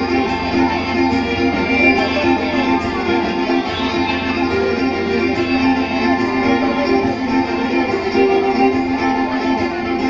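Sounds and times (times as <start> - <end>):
live band instrumental music: 0.0 - 10.0.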